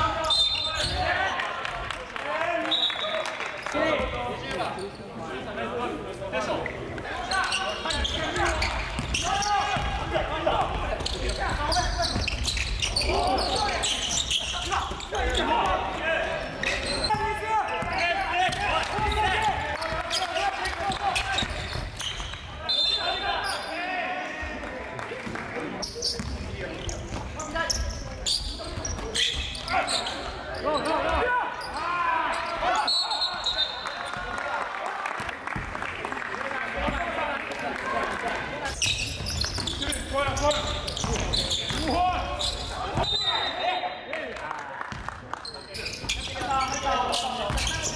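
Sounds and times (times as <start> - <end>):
players calling out: 6.4 - 24.8.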